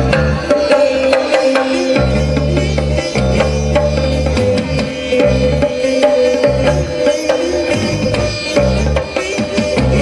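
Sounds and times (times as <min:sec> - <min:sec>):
bass guitar: 0:00.0 - 0:10.0.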